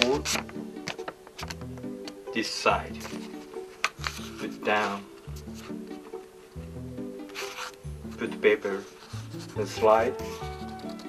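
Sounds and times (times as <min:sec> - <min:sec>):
paper rustling while folded: 0:00.0 - 0:01.1, 0:02.9 - 0:05.8, 0:07.2 - 0:11.0
background music with held notes: 0:00.0 - 0:11.0.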